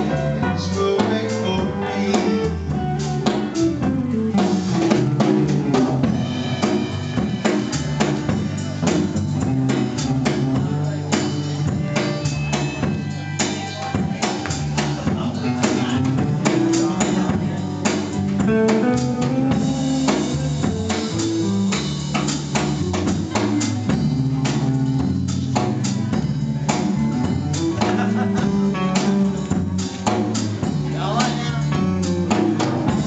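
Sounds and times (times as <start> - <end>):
country band playing: 0.0 - 33.0
drum kit beat: 0.0 - 33.0
guitar: 0.0 - 33.0.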